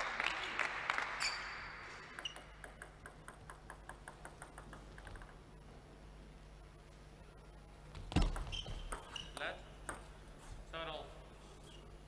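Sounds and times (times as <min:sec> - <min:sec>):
table tennis ball bouncing: 0:02.1 - 0:05.4, 0:08.0 - 0:10.2.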